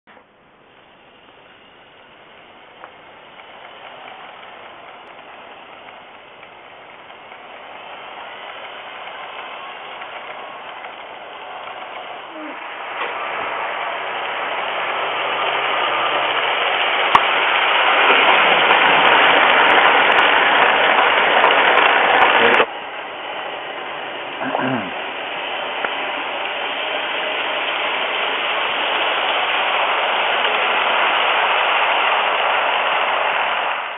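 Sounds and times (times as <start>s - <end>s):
model train motor whirring: 0.6s - 33.9s
light track clicks: 1.2s - 22.7s, 25.1s - 33.6s.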